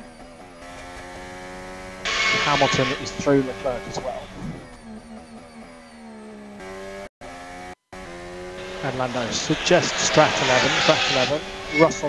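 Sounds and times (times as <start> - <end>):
racing car engine on-board: 0.0 - 12.0.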